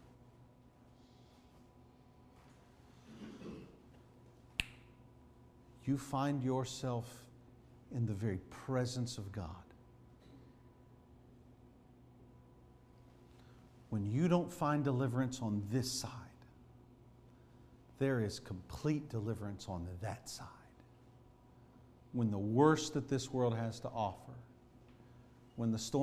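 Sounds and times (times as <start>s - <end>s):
low steady hum: 0.0s - 26.0s
man speaking: 7.9s - 9.7s, 13.9s - 16.4s, 18.0s - 20.8s, 22.2s - 24.5s, 25.6s - 26.0s.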